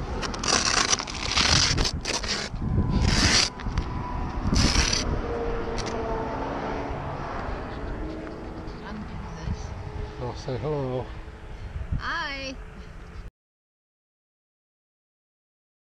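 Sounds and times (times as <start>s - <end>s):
camera handling noise: 5.8s - 6.0s.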